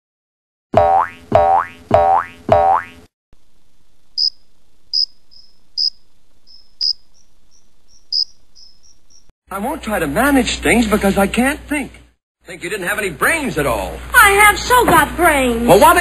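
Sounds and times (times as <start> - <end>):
cartoon boing sound effect: 0.8 - 3.0
crickets chirping: 3.6 - 9.3.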